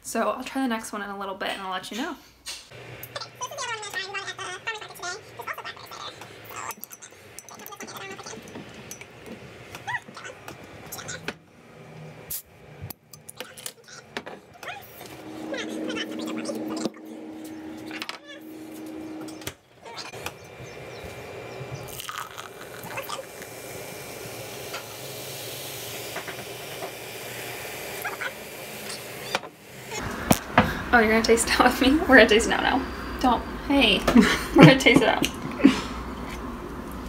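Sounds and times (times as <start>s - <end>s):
drink pouring and fizzing: 21.2s - 30.4s.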